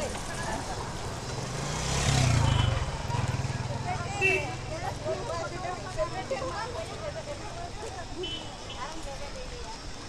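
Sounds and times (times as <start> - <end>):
crowd voices: 0.0 - 10.0
motorcycle engine passing: 0.8 - 5.6.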